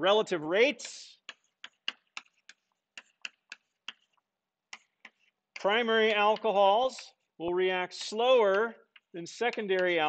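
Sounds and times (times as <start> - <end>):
chalk tapping on blackboard: 0.7 - 10.0.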